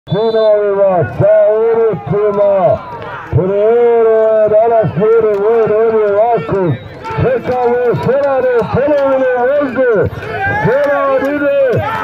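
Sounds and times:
man shouting: 0.1s - 12.0s
men running on dirt: 0.2s - 12.0s
horses galloping on dirt: 1.0s - 12.0s.

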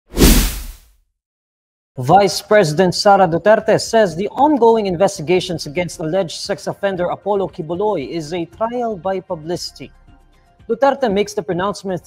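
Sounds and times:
whoosh sound effect: 0.1s - 0.8s.

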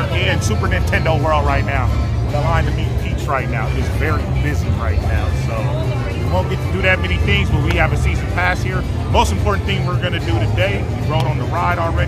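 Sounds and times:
background music: 0.0s - 12.0s
man talking: 0.0s - 12.0s.

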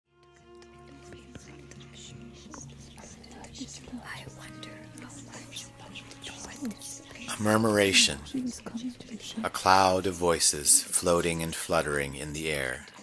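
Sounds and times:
whispering voices: 0.9s - 13.0s.

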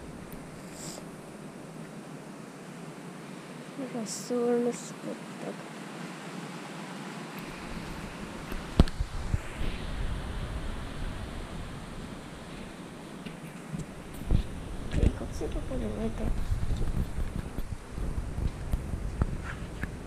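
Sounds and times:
camera handling rumble and rustling: 16.2s - 17.8s.

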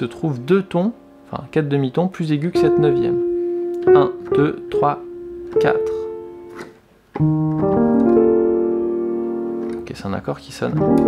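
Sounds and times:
piano chord rolled up: 0.0s - 11.0s
piano note held: 2.5s - 10.0s.

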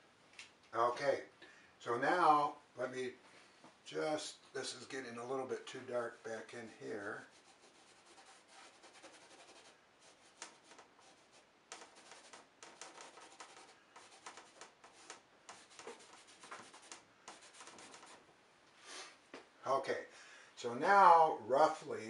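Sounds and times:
paper towel rubbing canvas: 7.2s - 18.2s.

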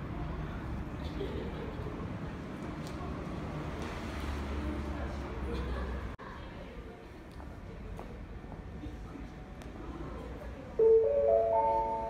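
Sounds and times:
quiet platform ambience: 0.0s - 12.0s
rising four-note chime: 10.8s - 12.0s.

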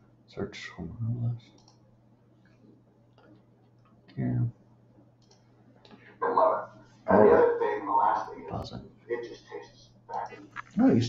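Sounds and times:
keyboard and mouse clicks: 5.2s - 5.5s.

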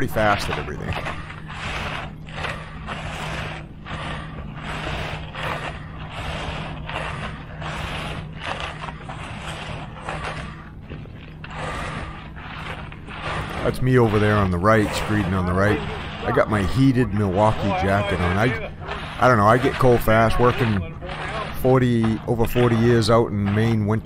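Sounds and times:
float scraping wet concrete: 0.0s - 24.0s
steady low hum: 0.0s - 24.0s.

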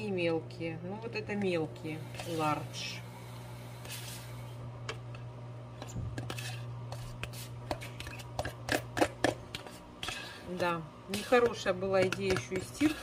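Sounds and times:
washing machine humming: 0.0s - 13.0s
metal spoon scraping plastic tub: 5.8s - 10.5s, 11.1s - 13.0s.

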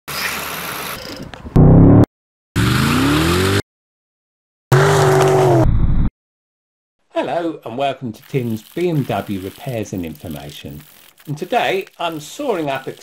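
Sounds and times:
car engine revving: 1.6s - 3.6s, 4.7s - 5.8s.

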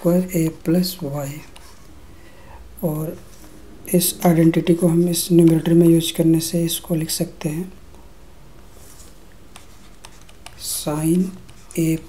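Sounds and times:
low room hum: 0.0s - 12.0s
stylus scratching on tablet: 8.8s - 12.0s.

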